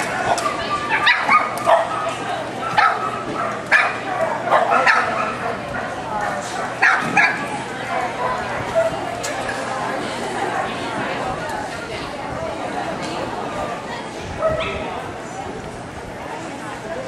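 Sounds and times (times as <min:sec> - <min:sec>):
dog barking sharply: 0:03.7 - 0:05.4, 0:06.8 - 0:07.4.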